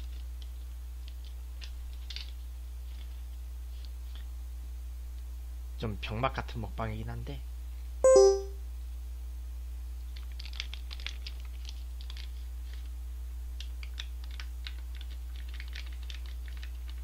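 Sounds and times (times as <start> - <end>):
short electronic chime: 8.1 - 8.5.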